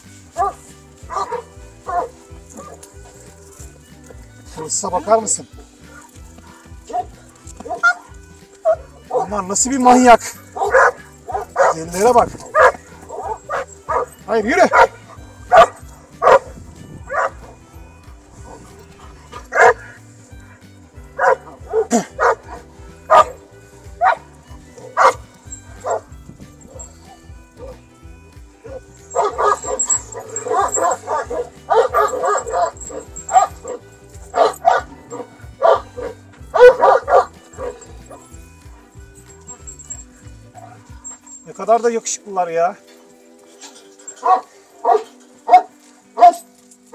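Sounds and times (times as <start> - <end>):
dogs barking: 0.0 - 28.0, 28.6 - 41.5, 42.8 - 46.9
background music with low beat: 0.0 - 46.9.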